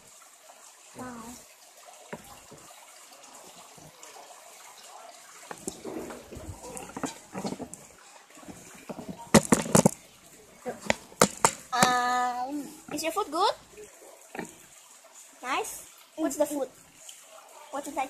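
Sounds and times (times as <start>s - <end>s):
dishes clattering at a table: 5.5s - 10.0s, 10.8s - 12.0s
phone handling knocks and rustles: 8.5s - 10.0s, 10.9s - 11.9s.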